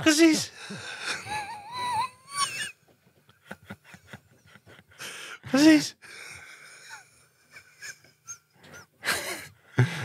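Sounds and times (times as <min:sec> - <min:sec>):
man whimpering: 0:00.6 - 0:02.8.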